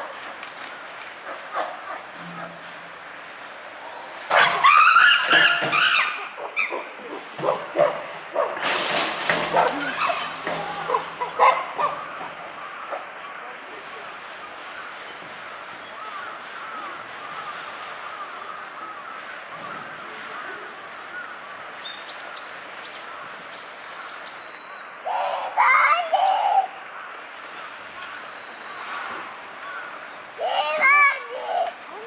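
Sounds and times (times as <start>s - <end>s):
child calling out: 25.0s - 26.8s, 30.4s - 32.0s.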